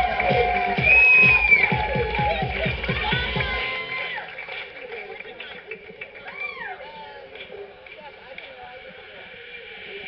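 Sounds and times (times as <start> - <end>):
faint crowd noise: 0.0 - 10.0.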